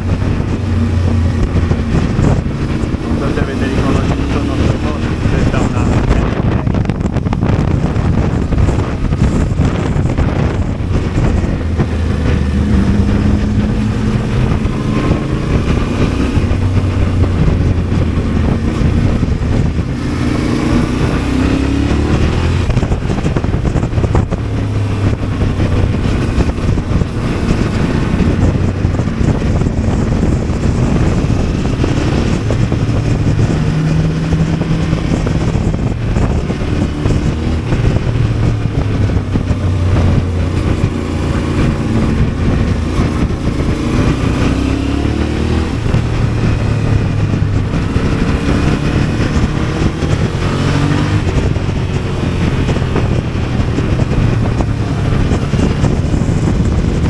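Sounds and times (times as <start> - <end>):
motorcycle engine revving: 0.0 - 57.0
wind noise on microphone: 0.0 - 57.0.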